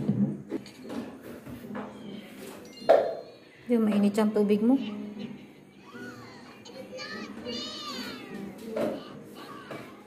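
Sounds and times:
child's wavering squeal: 5.8 - 10.0
children's voices: 5.8 - 10.0.

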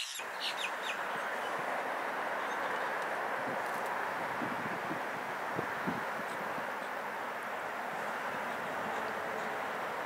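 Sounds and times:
high bird chirps: 0.0 - 1.5
steady outdoor hiss: 0.0 - 10.0.

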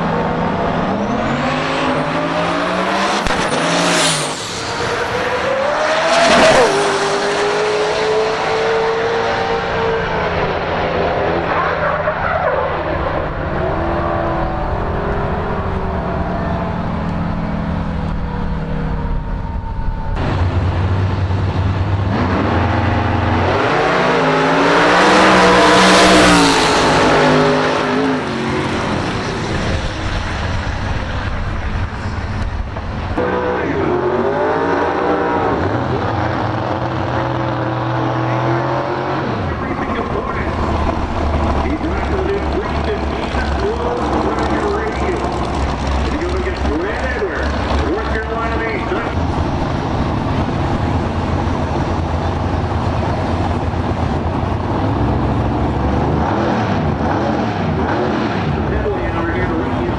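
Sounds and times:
car passing at full throttle: 0.0 - 59.9
race car engines revving: 0.0 - 59.9.

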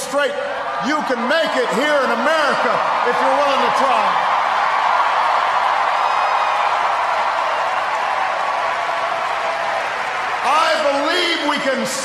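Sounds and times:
crowd applauding: 0.0 - 12.0
crowd cheering: 0.0 - 12.0.

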